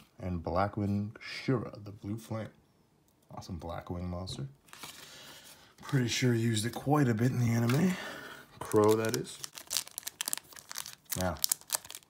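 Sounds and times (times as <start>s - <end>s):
foil pack crinkling: 7.4s - 12.0s.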